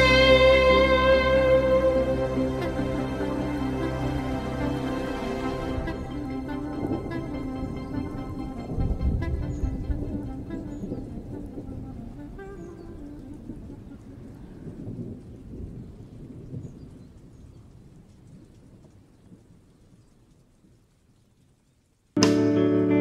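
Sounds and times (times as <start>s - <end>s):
sustained music notes: 0.0s - 14.4s, 22.2s - 23.0s
low rumbling wash: 0.0s - 19.1s.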